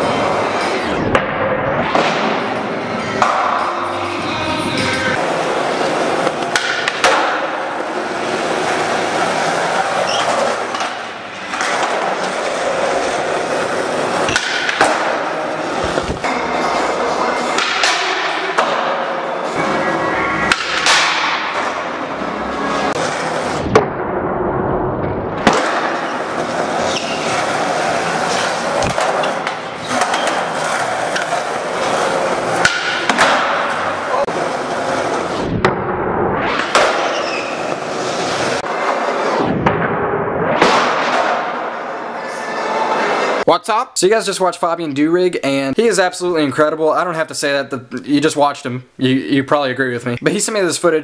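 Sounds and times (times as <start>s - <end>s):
skateboard wheels rolling on concrete: 0.0s - 39.5s
skateboard tail pops and landings: 25.4s - 25.9s.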